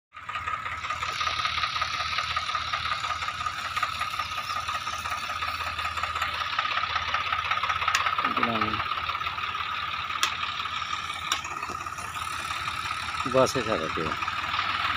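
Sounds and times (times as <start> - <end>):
tractor diesel engine chugging: 0.1 - 14.9.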